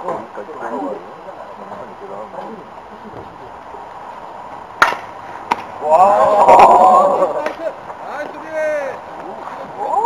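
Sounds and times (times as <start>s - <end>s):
baseball bat cracking ball: 4.8s - 5.8s
players shouting: 5.5s - 10.0s.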